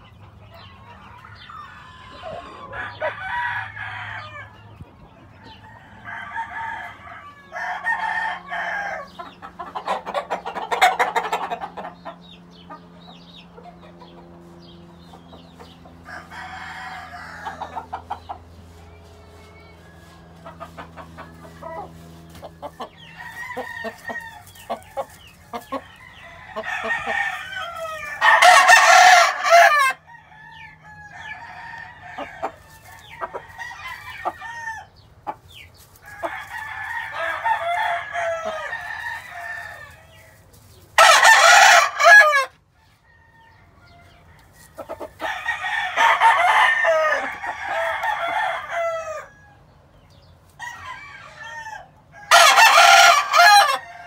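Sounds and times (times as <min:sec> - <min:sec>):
distant roosters crowing and clucking: 0:00.0 - 0:54.0
rooster crowing loudly: 0:01.8 - 0:04.5, 0:05.6 - 0:09.1, 0:16.0 - 0:17.8, 0:23.1 - 0:24.6, 0:26.0 - 0:32.6, 0:36.2 - 0:40.3, 0:41.0 - 0:44.0, 0:45.2 - 0:49.6, 0:50.6 - 0:54.0.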